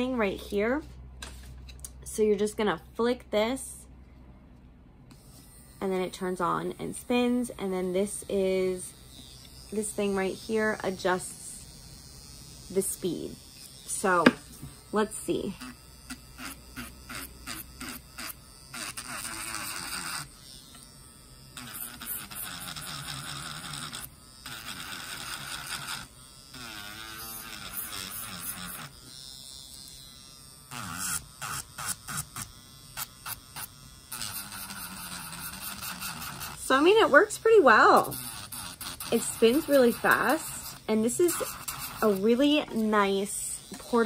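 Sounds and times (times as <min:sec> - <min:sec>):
electric nail drill running: 0:05.1 - 0:44.0.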